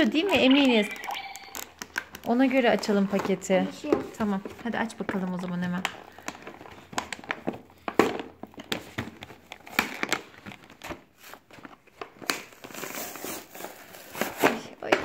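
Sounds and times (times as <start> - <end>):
plastic blister pack crinkling: 0.2 - 14.6.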